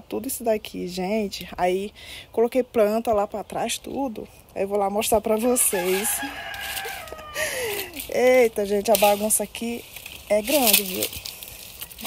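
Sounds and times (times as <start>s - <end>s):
rooster crowing: 5.6s - 8.0s.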